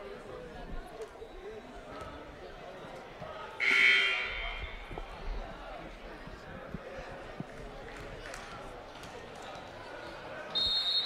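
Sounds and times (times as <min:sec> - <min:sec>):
chatter in hall: 0:00.0 - 0:11.0.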